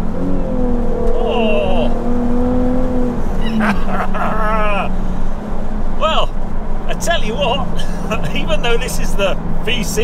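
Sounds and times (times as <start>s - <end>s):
car engine from inside cabin: 0.0s - 10.0s
man laughing: 3.4s - 4.9s, 7.7s - 8.6s.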